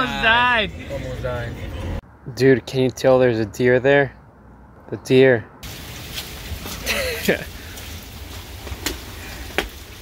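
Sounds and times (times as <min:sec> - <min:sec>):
footsteps on wet pavement: 0:05.6 - 0:10.0.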